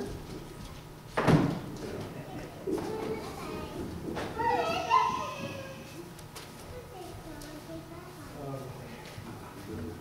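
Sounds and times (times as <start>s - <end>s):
child calling out: 4.4s - 5.9s.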